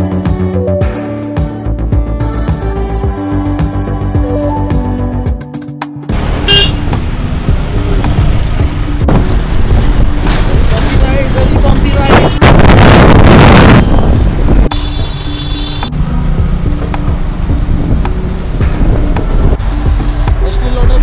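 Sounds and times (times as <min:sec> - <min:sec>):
motorcycle riding in traffic: 0:06.1 - 0:21.0
vehicle horns honking: 0:06.3 - 0:07.0, 0:13.5 - 0:16.0
wind rushing on microphone: 0:09.0 - 0:14.7.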